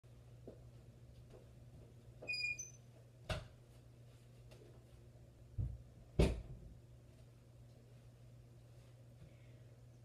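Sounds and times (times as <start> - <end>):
door squeak: 2.2 - 2.9.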